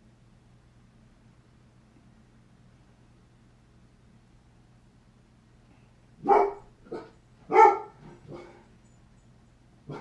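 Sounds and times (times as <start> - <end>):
dog barking: 6.2 - 8.6.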